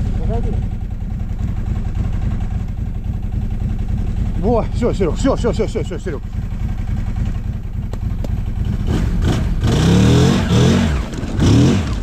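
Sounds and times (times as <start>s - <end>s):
snowmobile engine running: 7.9s - 12.0s.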